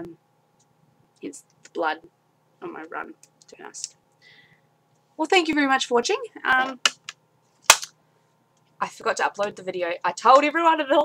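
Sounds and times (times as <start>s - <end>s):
faint background hum: 0.0s - 11.0s
sharp snap: 6.8s - 7.9s.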